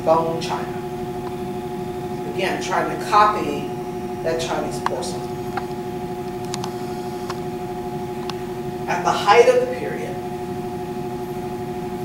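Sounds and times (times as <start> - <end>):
droning machine hum: 0.0 - 12.0.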